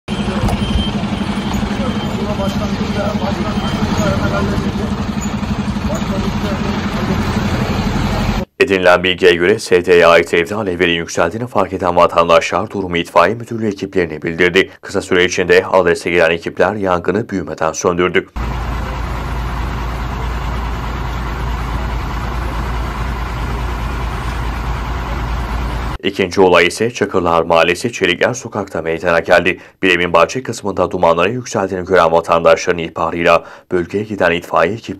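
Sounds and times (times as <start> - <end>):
faint voices talking: 0.1 - 7.2
diesel engine idling: 0.1 - 8.5, 18.4 - 26.0.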